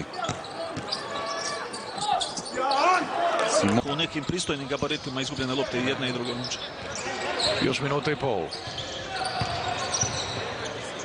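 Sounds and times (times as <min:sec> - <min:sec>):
voices of players and crowd: 0:00.0 - 0:11.0
shoe squeaks: 0:00.1 - 0:03.0, 0:08.5 - 0:10.5.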